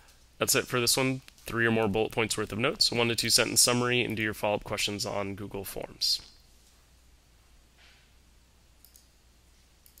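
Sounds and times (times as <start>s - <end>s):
computer mouse clicks: 8.8s - 9.1s.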